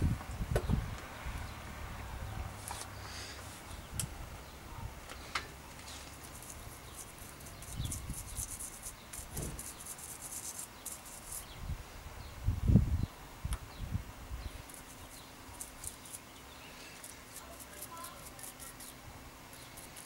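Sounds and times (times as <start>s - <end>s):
small tool scrubbing plastic spool: 17.0s - 20.0s.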